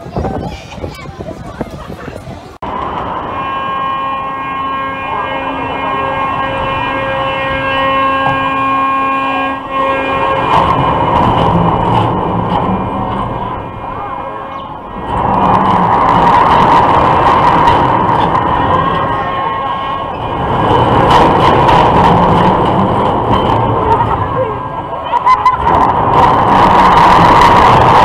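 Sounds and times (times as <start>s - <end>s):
roller coaster rumble and rushing: 0.0s - 28.0s
steady pitched whine: 2.6s - 28.0s.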